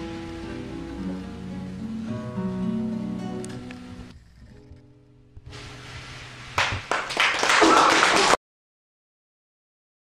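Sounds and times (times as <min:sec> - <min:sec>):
audience clapping: 0:06.6 - 0:08.4.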